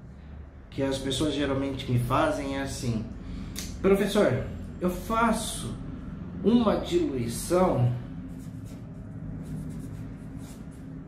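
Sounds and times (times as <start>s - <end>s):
pen scratching on paper: 8.3s - 10.9s.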